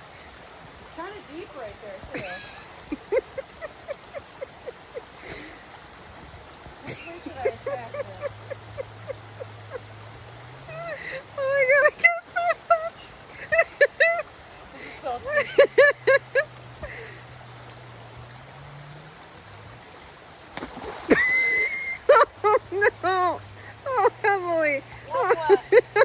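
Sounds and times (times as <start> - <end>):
creek rushing: 0.0 - 26.0
bursts of nervous laughter: 2.1 - 5.6, 6.8 - 9.9, 10.7 - 17.1, 25.0 - 26.0.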